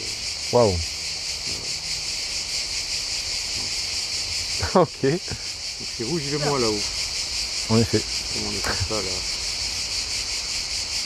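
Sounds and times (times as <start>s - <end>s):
cicadas buzzing: 0.0s - 11.0s.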